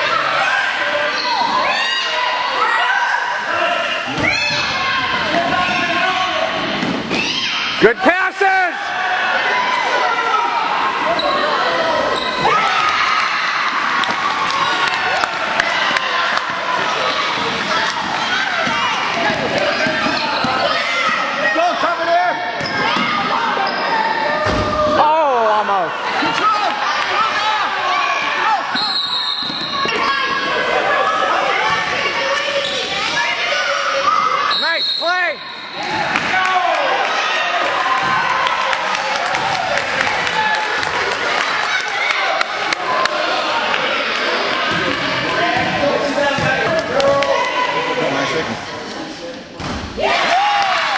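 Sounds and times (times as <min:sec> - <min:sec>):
people shouting in a hall: 0:00.0 - 0:48.7, 0:49.8 - 0:50.9.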